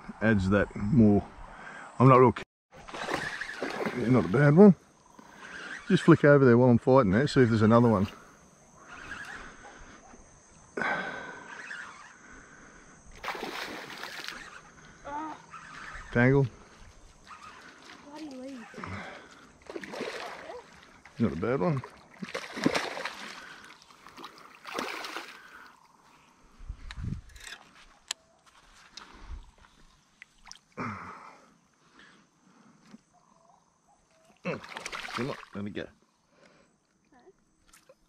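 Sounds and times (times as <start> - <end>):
fish splashing in shallow water: 2.7 - 5.9, 13.1 - 14.9, 17.0 - 25.9, 28.8 - 30.8, 34.2 - 35.6.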